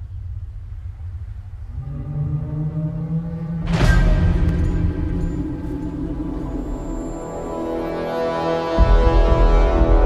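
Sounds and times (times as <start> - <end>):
deep cinematic rumble: 0.0 - 8.1
low droning note: 0.0 - 10.0.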